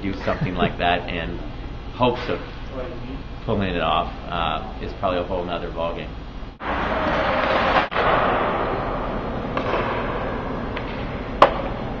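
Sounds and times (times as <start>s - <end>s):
hockey puck crack: 6.6s - 11.8s.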